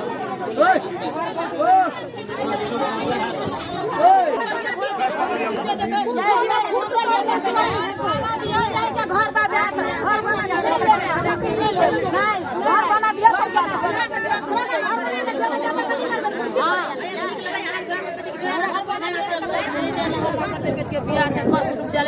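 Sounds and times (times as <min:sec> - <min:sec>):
women arguing loudly: 0:00.0 - 0:22.0.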